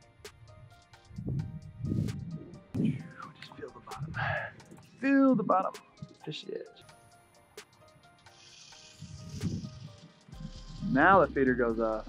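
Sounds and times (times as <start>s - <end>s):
faint background music: 0.0s - 12.0s
low hum: 1.1s - 3.2s.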